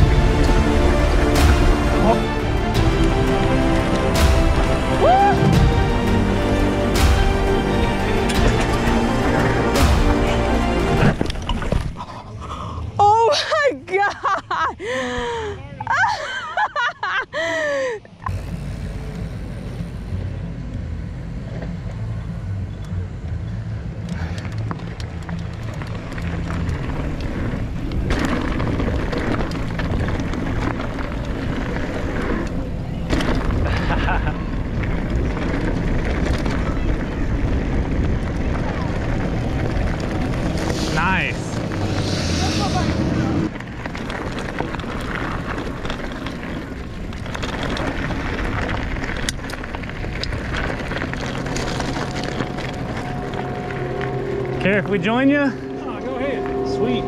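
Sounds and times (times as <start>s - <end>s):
bike tyres rumbling on gravel: 0.0s - 12.2s, 18.2s - 22.4s, 23.9s - 57.0s
wind buffeting microphone: 24.9s - 57.0s
high wavering whine: 50.2s - 57.0s.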